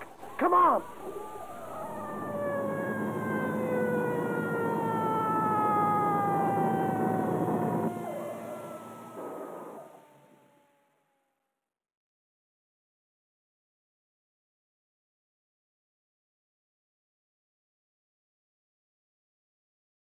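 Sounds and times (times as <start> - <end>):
rumble of passing train: 1.0 - 10.2.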